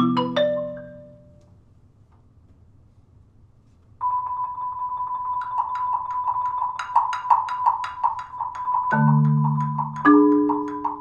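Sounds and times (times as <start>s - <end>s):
held high marimba note: 0.0s - 1.4s, 4.0s - 11.0s.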